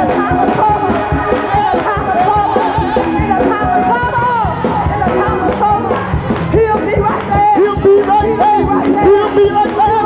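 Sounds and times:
band playing steady beat: 0.0 - 10.0
woman singing gospel solo: 0.0 - 10.0.

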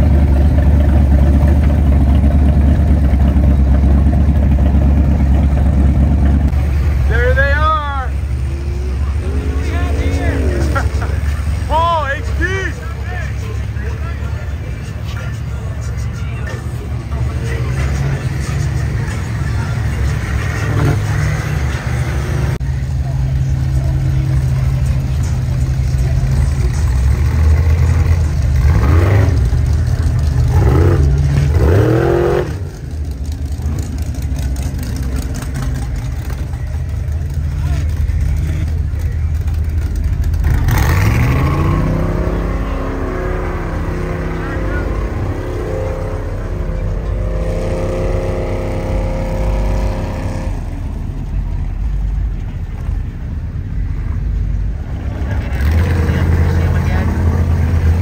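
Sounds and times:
off-road vehicle engines revving: 0.0 - 58.0.

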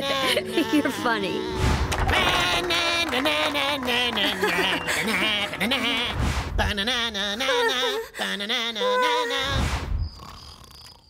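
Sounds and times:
cartoon character crying: 0.0 - 5.8, 6.8 - 9.5
background music: 0.0 - 6.8.

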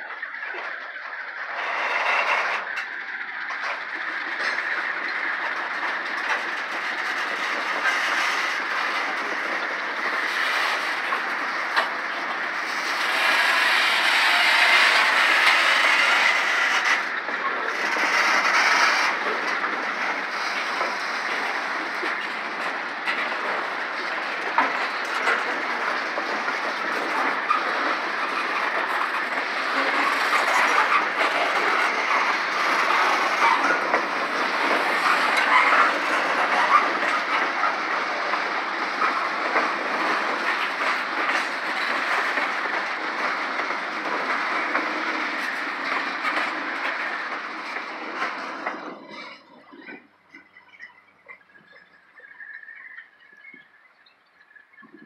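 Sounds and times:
freight train rolling past: 0.0 - 51.0
wheels clicking on rails: 0.0 - 55.0.

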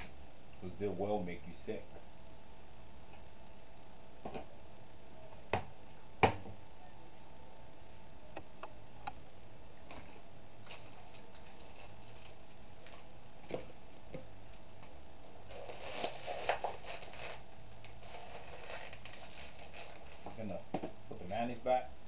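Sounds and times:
steady hum: 0.0 - 22.0
small objects clattering: 15.5 - 20.5.

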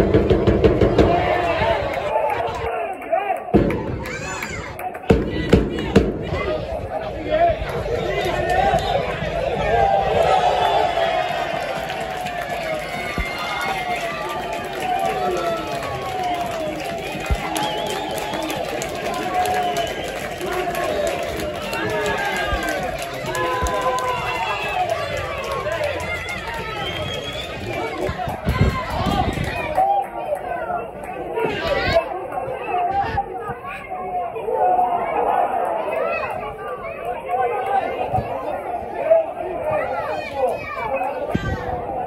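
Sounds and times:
crowd talking and calling out: 0.0 - 42.0.

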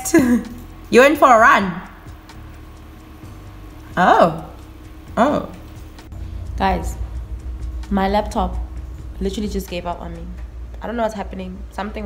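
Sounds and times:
faint background music: 0.0 - 12.0
low steady hum: 0.0 - 12.0.

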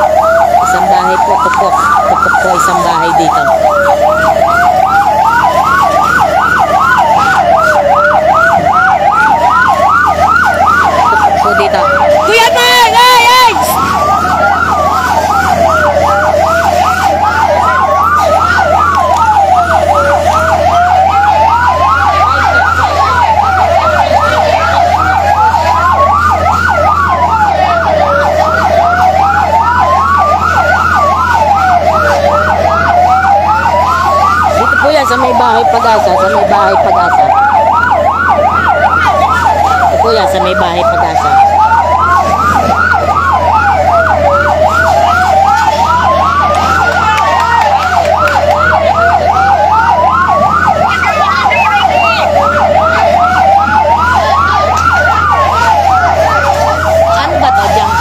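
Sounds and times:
fire truck siren wailing: 0.0 - 58.0
fire truck siren yelping: 0.0 - 58.0.

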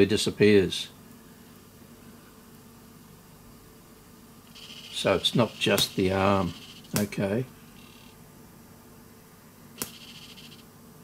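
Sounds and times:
soft hiss: 0.0 - 11.0
cassette deck transport hum: 2.5 - 11.0.

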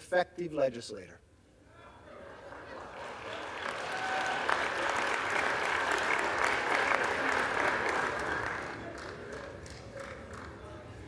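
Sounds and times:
audience applause: 2.2 - 10.7.

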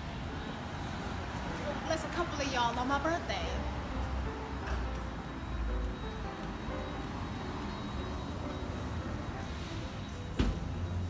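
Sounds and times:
road traffic rumble: 0.0 - 11.0
soft background music: 0.0 - 11.0.

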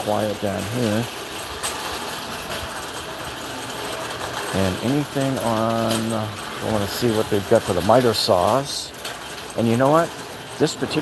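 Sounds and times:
shopping cart rattling: 0.0 - 11.0.

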